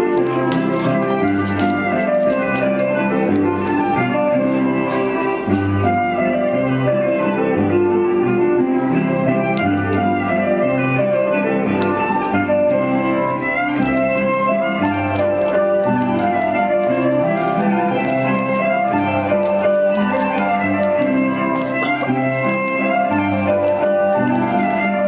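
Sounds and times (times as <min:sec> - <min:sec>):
instrumental folk dance tune: 0:00.0 - 0:25.0.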